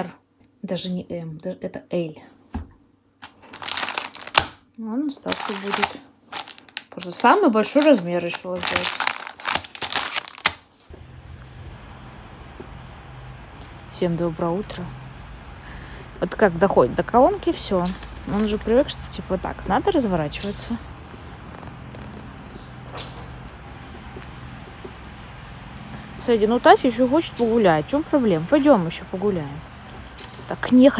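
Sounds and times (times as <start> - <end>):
plastic packet crinkling: 3.2 - 10.9
steady low hum: 10.9 - 30.9.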